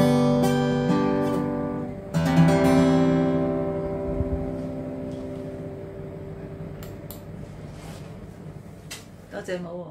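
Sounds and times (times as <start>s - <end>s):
acoustic guitar strummed chord: 0.0s - 7.6s.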